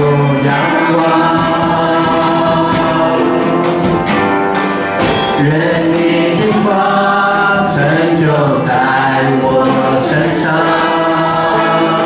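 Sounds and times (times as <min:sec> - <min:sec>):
group singing worship song: 0:00.0 - 0:12.0
keyboard accompaniment: 0:00.0 - 0:12.0.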